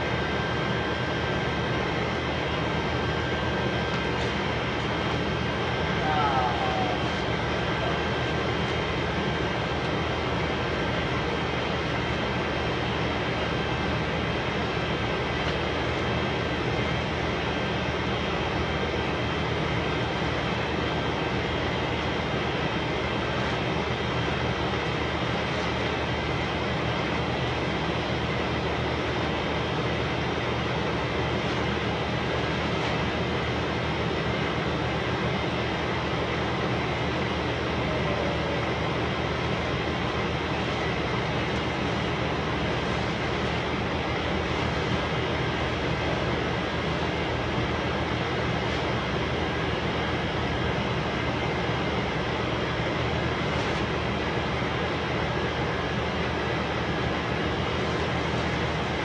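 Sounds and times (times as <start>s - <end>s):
machine hum with hiss: 0.0s - 59.0s.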